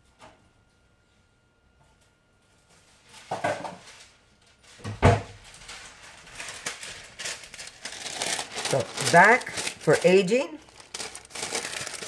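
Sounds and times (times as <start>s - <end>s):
wax paper rustling: 3.8s - 12.0s.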